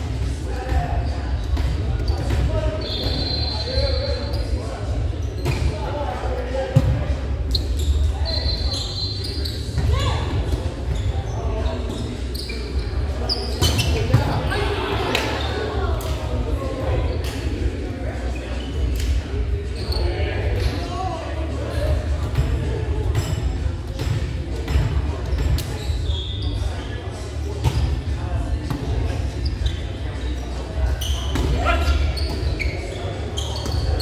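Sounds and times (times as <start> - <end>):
sneakers squeaking on floor: 0.7 - 5.9, 6.8 - 16.3, 18.3 - 21.0, 21.8 - 34.0.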